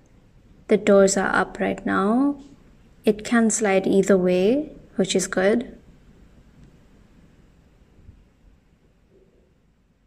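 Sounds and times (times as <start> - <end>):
faint low rumble: 0.0 - 10.0.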